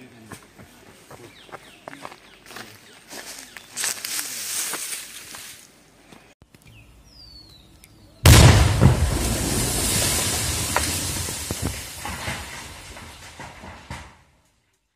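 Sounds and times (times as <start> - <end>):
explosion blast with rumble: 8.3 - 14.1.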